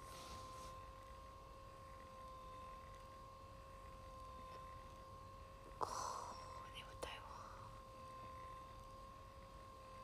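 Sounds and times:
massage cushion motor hum: 0.0 - 10.0
breathy whisper-like sound: 5.8 - 7.8.

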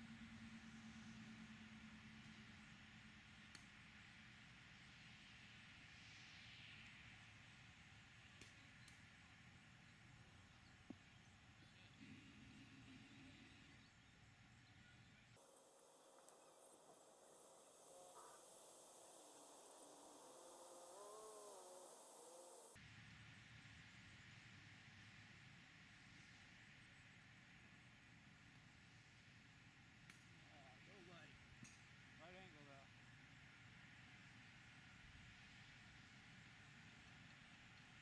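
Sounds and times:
faint rising-and-falling calls: 15.4 - 22.8.

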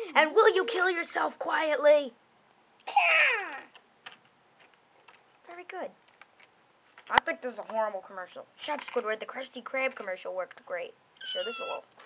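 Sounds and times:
person's high falling cry: 2.9 - 3.7.

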